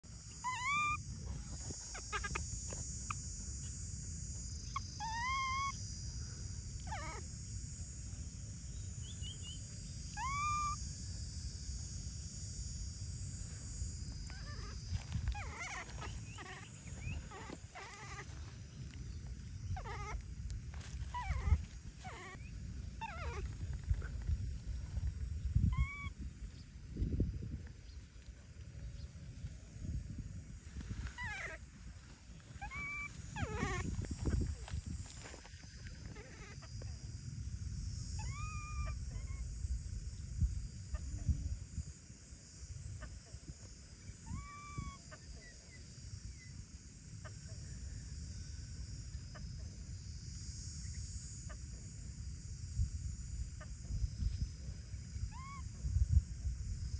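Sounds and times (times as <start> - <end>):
baby monkey cooing and squeaking: 0.3 - 2.8, 4.7 - 5.8, 6.8 - 7.2, 10.2 - 10.8, 14.3 - 19.0, 19.6 - 24.1, 25.7 - 26.2, 30.9 - 31.7, 32.5 - 34.6, 35.8 - 36.7, 38.2 - 39.4, 44.2 - 45.2, 55.3 - 55.7
rustling foliage: 14.6 - 25.2.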